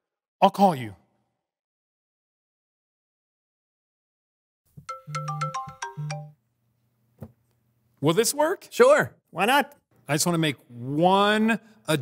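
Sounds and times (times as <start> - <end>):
mobile phone ringtone: 4.8 - 6.4.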